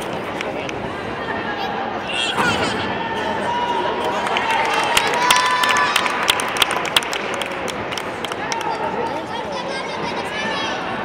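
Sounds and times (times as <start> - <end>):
crowd murmur: 0.0 - 11.0
spectators clapping: 3.8 - 9.2.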